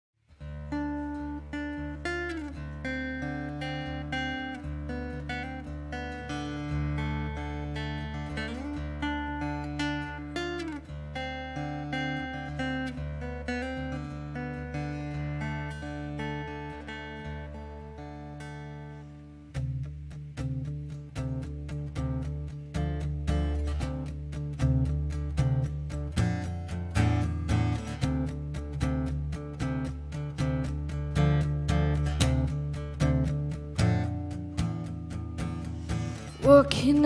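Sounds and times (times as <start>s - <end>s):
acoustic guitar picking: 0.3s - 37.0s.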